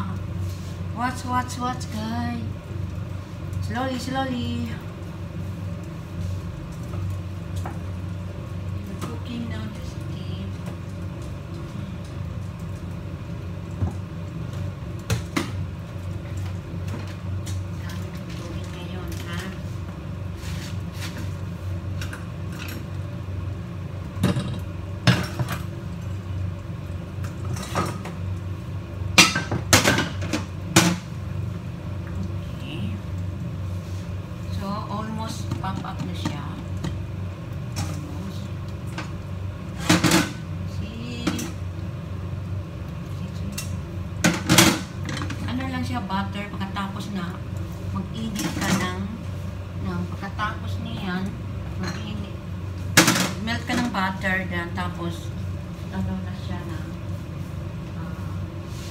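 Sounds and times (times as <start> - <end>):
steady low hum: 0.0 - 58.9.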